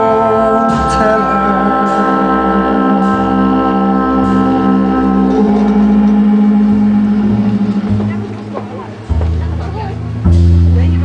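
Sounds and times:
trumpet long notes: 0:00.0 - 0:09.0
bass clarinet long notes: 0:00.0 - 0:11.0
strong low note: 0:00.0 - 0:11.0
light drums: 0:04.2 - 0:10.9.

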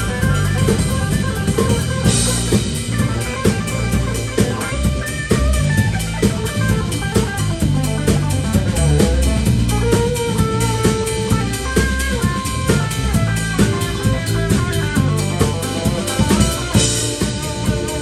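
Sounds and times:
drum kit beat: 0:00.0 - 0:18.0
electric bass: 0:00.0 - 0:18.0
electric guitar melody: 0:00.0 - 0:18.0.

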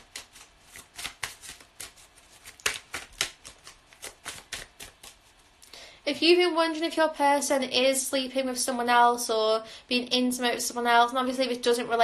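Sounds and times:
cards shuffled by hand: 0:00.0 - 0:05.6.

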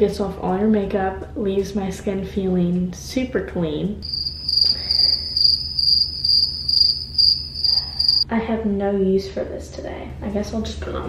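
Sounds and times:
cricket chirping: 0:04.0 - 0:08.3.

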